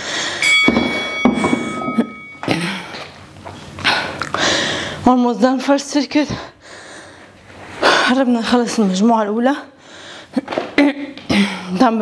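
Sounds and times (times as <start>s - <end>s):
dumbbells knocking on wooden box: 0.6s - 2.1s
heavy breathing: 1.4s - 5.0s, 6.3s - 8.2s, 9.8s - 10.4s.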